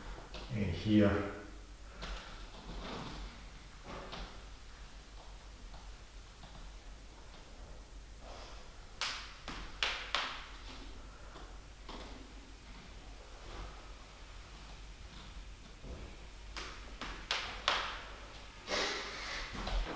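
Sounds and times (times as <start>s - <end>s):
man breathing sharply: 18.7s - 19.7s.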